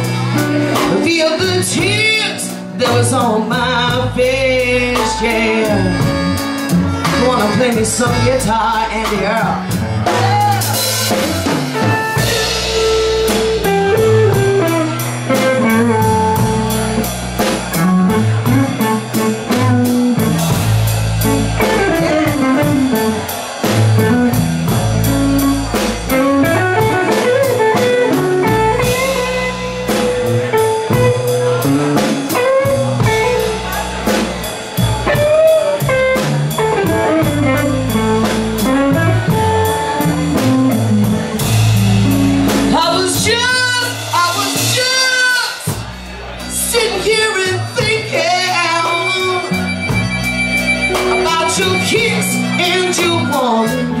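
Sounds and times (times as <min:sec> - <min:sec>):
bass guitar: 0:00.0 - 0:54.0
drum kit: 0:00.0 - 0:54.0
electric guitar solo with bent notes: 0:04.6 - 0:54.0.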